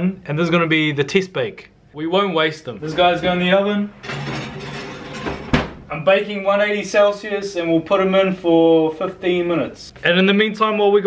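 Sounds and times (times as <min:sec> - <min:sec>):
pan scraping on oven rack: 0:02.8 - 0:05.8
oven door thud: 0:03.1 - 0:05.8.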